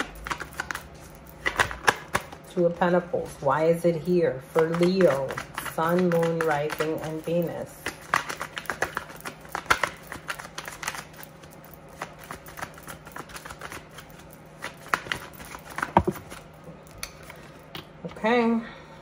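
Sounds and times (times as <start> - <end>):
cards being shuffled: 0.0 - 2.4, 4.6 - 16.5.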